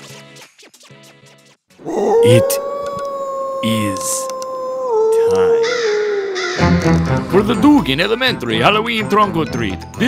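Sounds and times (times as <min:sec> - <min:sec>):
wolf howling: 0:01.8 - 0:06.8
crows cawing: 0:01.9 - 0:06.8.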